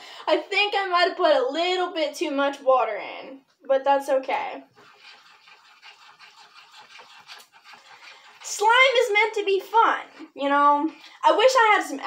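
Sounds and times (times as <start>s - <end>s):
slime sloshing in glass bowl: 4.2s - 10.4s.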